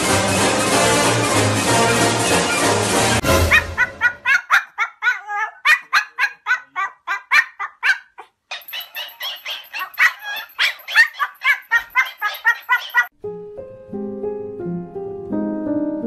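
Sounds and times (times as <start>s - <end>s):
small dog yapping: 3.5s - 13.1s.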